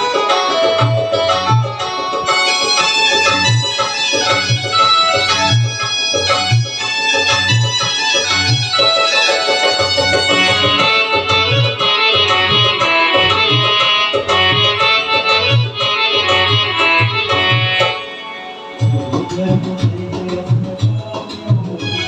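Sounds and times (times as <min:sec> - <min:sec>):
electronic keyboard melody and chords: 0:00.0 - 0:22.0
tabla-style drum rhythm: 0:00.0 - 0:22.0
low bass beat: 0:18.8 - 0:22.0.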